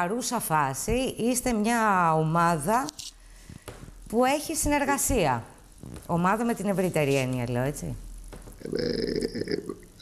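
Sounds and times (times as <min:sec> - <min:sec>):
low throaty creaky vocal sound: 0:08.5 - 0:10.0.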